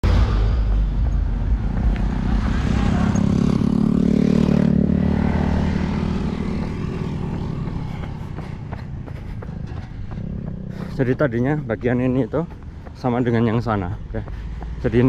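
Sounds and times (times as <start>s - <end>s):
motorcycle engines passing: 0.0s - 15.0s
truck engine rumbling: 0.0s - 15.0s.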